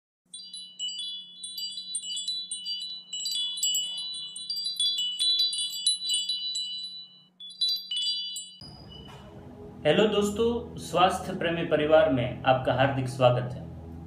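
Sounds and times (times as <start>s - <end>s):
wind chimes tinkling: 0.3s - 9.1s
faint low hum: 8.6s - 14.0s.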